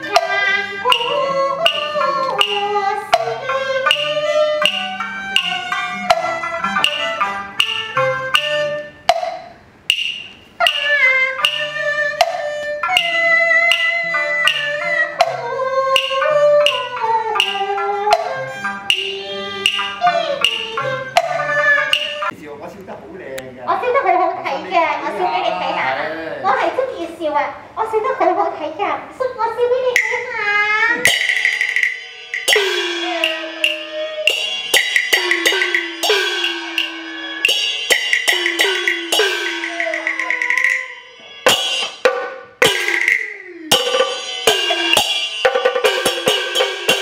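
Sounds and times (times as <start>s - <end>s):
fiddle and wind melody: 0.0s - 9.1s, 10.6s - 22.4s, 32.9s - 37.5s
sharp percussion beat: 0.0s - 22.4s, 29.9s - 47.0s.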